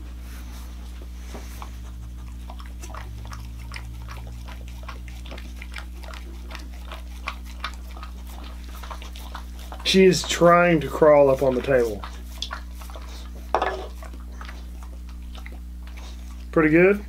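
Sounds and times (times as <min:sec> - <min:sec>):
steady low hum: 0:00.0 - 0:17.0
dog licking can: 0:01.6 - 0:16.7.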